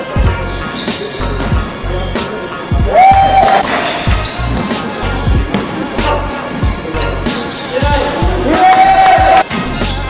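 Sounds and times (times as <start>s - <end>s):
basketball bouncing on hardwood floor: 4.1s - 6.8s.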